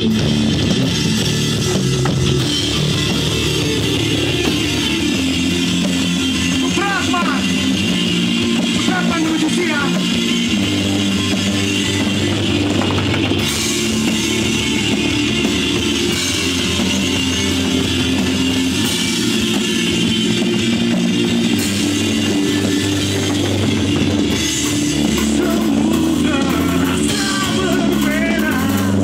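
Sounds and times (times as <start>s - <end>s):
heavy rock band playing: 0.0s - 29.0s.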